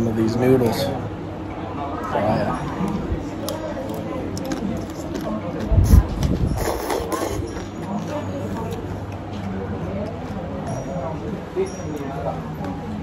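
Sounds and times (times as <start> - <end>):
noodles slurped and chewed: 3.4 - 10.5.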